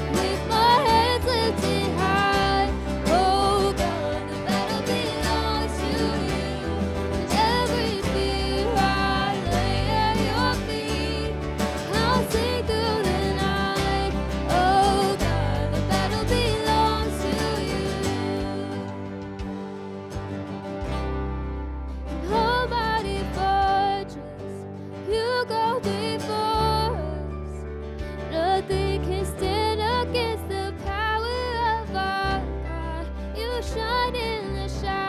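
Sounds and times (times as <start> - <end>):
women singing together: 0.0 - 19.2
drums: 0.0 - 22.5
acoustic guitar: 0.0 - 35.0
bass guitar: 0.0 - 35.0
keyboard: 0.0 - 35.0.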